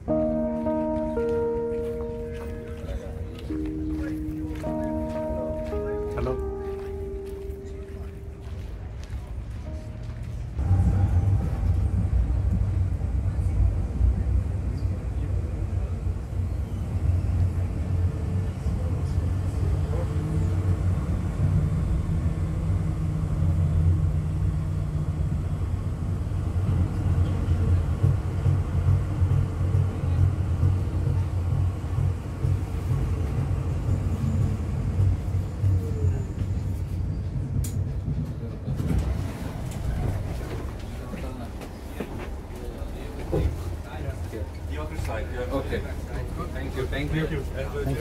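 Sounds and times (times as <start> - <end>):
tram rumbling: 0.0 - 48.0.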